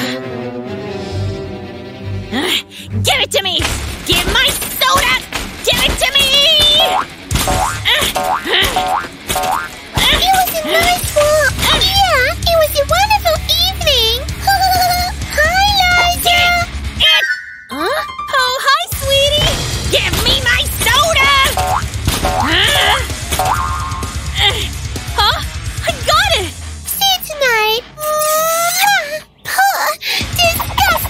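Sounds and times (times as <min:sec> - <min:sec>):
background music: 0:00.0 - 0:31.0
cartoon boing effects: 0:06.8 - 0:09.7
springy cartoon pitch sweeps: 0:17.0 - 0:18.4.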